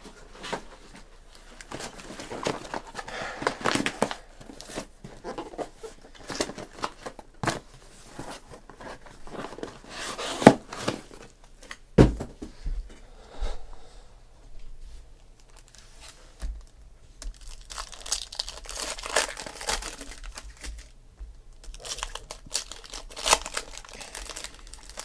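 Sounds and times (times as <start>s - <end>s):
foil wrappers crinkling: 1.4s - 11.2s, 15.4s - 21.0s, 21.6s - 25.0s.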